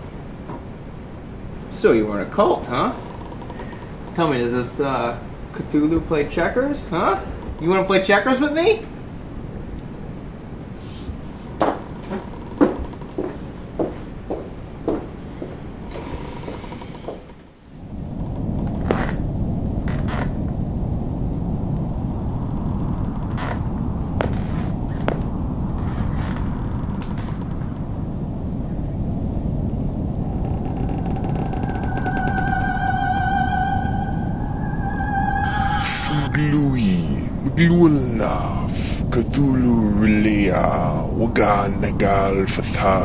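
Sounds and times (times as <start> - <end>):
low rumble: 17.8 - 43.0
held musical tones: 31.4 - 40.4.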